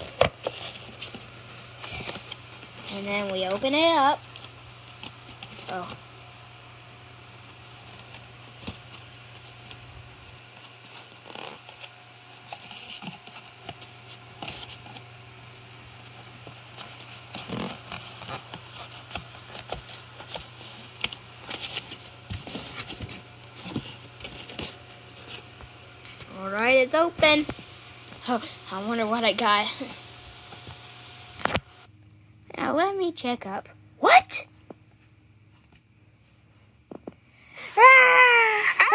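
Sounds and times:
steady low hum: 0:00.0 - 0:38.9.

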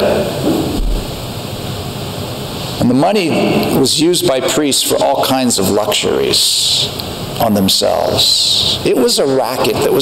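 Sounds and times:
steady background hiss: 0:00.0 - 0:10.0
low thump: 0:00.4 - 0:01.2.

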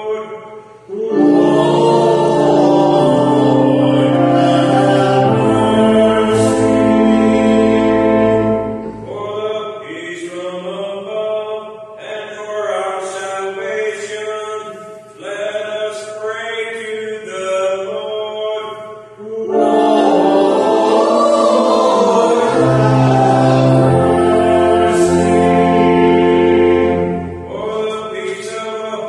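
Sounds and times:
organ chords: 0:00.0 - 0:10.0, 0:19.2 - 0:29.0
person chanting: 0:00.0 - 0:29.0
low bass organ note: 0:01.0 - 0:09.5, 0:19.5 - 0:27.9.

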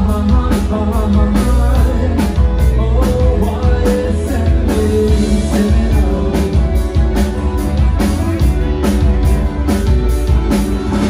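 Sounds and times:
drum kit beat: 0:00.0 - 0:11.0
electric guitar: 0:00.0 - 0:11.0.

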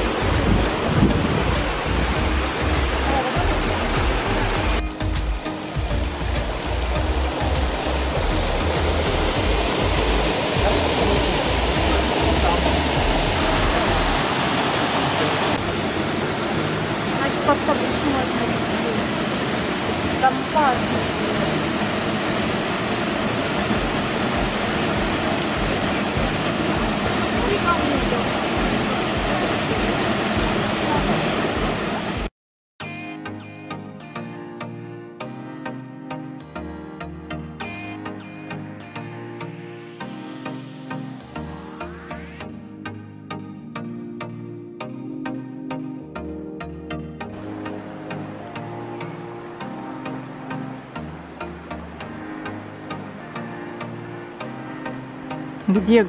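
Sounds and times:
waterfall and river rushing: 0:00.0 - 0:32.3, 0:36.1 - 0:42.5, 0:47.2 - 0:56.0.

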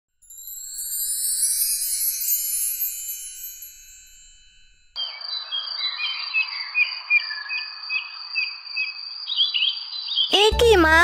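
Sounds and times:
chime: 0:00.1 - 0:05.0.

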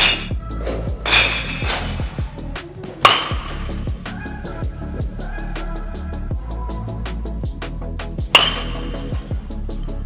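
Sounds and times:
baseball bat hitting ball: 0:00.0 - 0:00.4, 0:01.0 - 0:02.2, 0:03.0 - 0:03.9, 0:08.3 - 0:09.2
background music with steady beat: 0:00.0 - 0:10.0.

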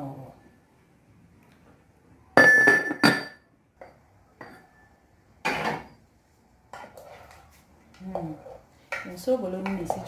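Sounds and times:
ceramic pot clinking: 0:02.4 - 0:04.9.

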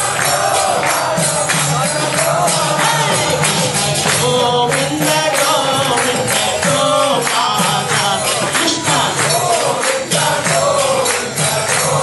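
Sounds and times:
jingling metal percussion: 0:00.0 - 0:12.0
person chanting into a microphone: 0:01.2 - 0:12.0.

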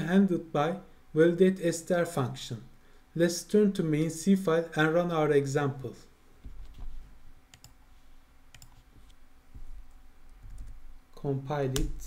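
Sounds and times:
computer clicks: 0:07.5 - 0:07.8, 0:08.5 - 0:09.2.

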